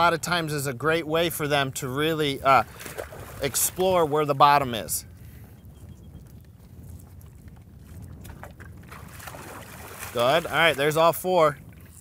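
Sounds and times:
wind rumble on microphone: 0.0 - 12.0
horse splashing in water: 2.4 - 4.4, 6.4 - 12.0.

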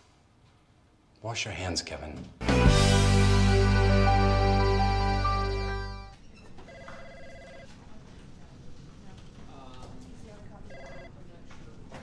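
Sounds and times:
faint office chatter: 6.1 - 12.0
telephone trilling two-tone ring: 6.7 - 7.7, 10.7 - 11.1.

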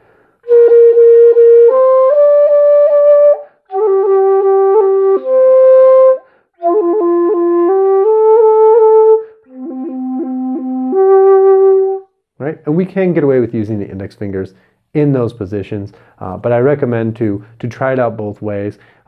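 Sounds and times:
bamboo flute melody: 0.4 - 12.1
quick breaths: 15.9 - 16.2, 18.8 - 19.0.

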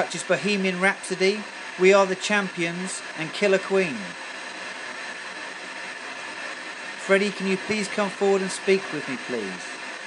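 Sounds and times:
radio static hiss: 0.0 - 4.4, 5.3 - 10.0.

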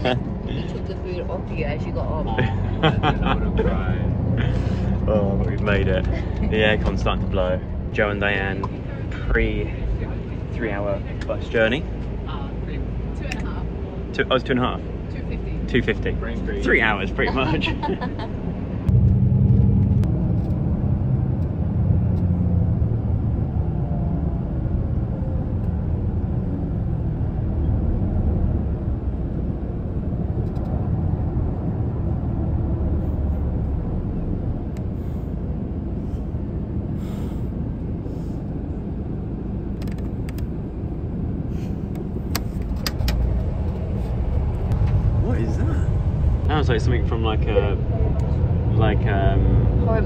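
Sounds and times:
coach engine rumble: 0.0 - 50.0
road noise: 0.0 - 50.0.

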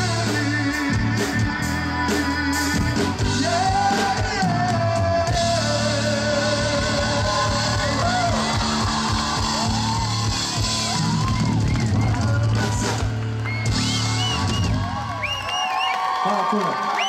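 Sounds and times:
man singing: 0.0 - 9.0, 11.8 - 13.1
live band playing: 0.0 - 16.1.

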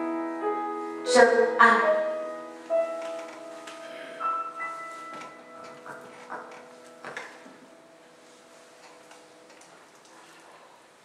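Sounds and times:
electronic keyboard chord: 0.0 - 9.8.

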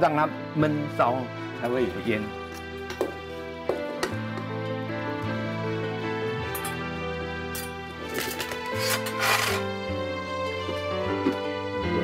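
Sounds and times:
background music: 0.0 - 12.0
wood shavings scraping in metal basin: 8.7 - 9.7.

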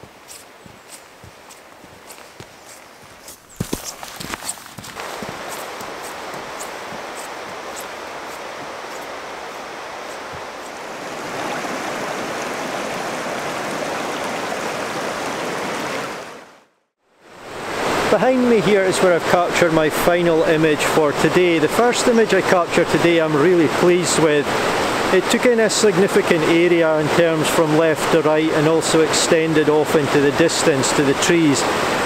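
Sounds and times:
footsteps through frosty grass: 0.0 - 11.8
river running over rocks: 0.0 - 16.7, 17.3 - 32.0.

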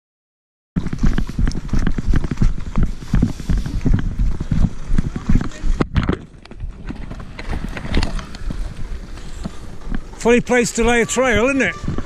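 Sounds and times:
horse hooves on tarmac: 0.8 - 12.0
wind rumble on microphone: 0.8 - 12.0.

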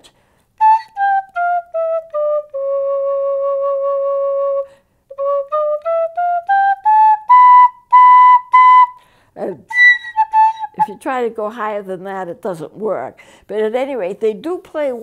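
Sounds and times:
plastic recorder playing notes: 0.6 - 9.0, 9.7 - 10.9
person talking: 9.4 - 9.7, 10.8 - 15.0.

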